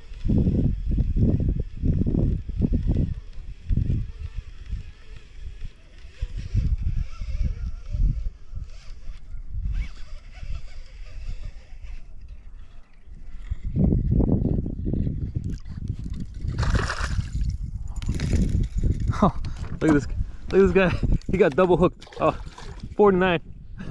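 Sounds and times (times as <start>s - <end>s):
sleeve rubbing on microphone: 6.1s - 21.7s
water splashing against kayak: 15.5s - 18.7s, 21.3s - 23.0s.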